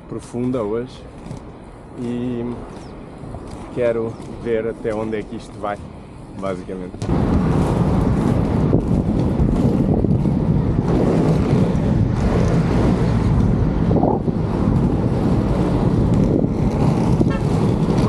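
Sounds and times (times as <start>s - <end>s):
skate wheels rolling on asphalt: 0.0s - 18.0s
wind rushing over microphone: 0.0s - 18.0s.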